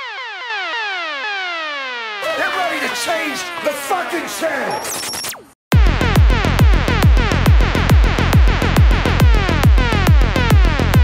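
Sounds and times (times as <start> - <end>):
synth tone gliding downward: 0.0 - 4.1.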